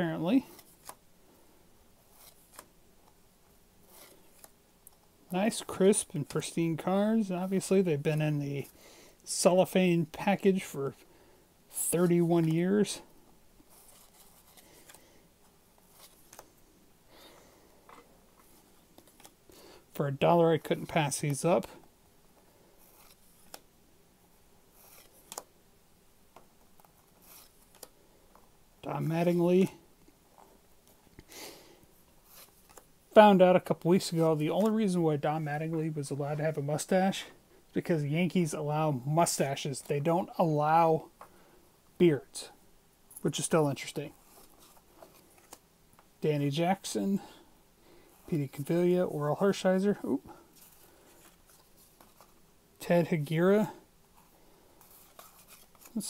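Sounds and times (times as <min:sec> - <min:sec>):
person speaking: 0:00.0 - 0:00.7, 0:05.3 - 0:11.1, 0:11.7 - 0:13.9, 0:19.9 - 0:21.8, 0:28.8 - 0:29.8, 0:33.1 - 0:41.1, 0:42.0 - 0:44.2, 0:46.2 - 0:47.4, 0:48.2 - 0:50.7, 0:52.2 - 0:53.9, 0:55.3 - 0:56.0
card rustling: 0:11.7 - 0:23.7, 0:24.7 - 0:25.5, 0:26.3 - 0:31.5, 0:32.1 - 0:37.0, 0:43.2 - 0:46.1, 0:47.9 - 0:52.4, 0:53.0 - 0:56.0.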